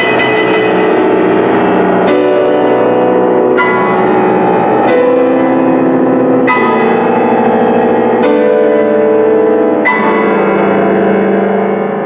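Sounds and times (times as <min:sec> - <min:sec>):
grand piano chords: 0:00.0 - 0:12.0.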